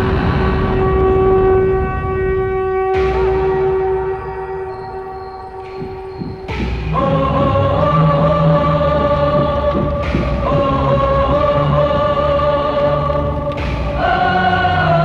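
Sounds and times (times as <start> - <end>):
long held orchestral note: 0.0 - 6.6
deep rumble: 0.0 - 15.0
choir singing: 2.9 - 15.0.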